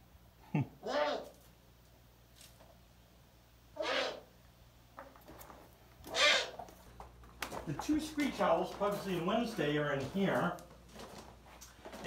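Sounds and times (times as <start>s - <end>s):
owl call: 3.8s - 4.3s, 6.1s - 6.6s.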